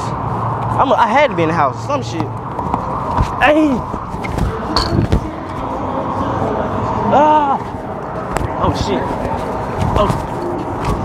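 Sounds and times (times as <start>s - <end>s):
outdoor traffic rumble: 0.0s - 11.0s.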